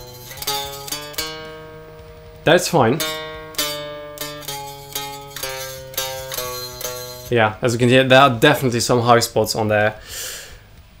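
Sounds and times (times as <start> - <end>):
baritone guitar notes with fret buzz: 0.0 - 9.3.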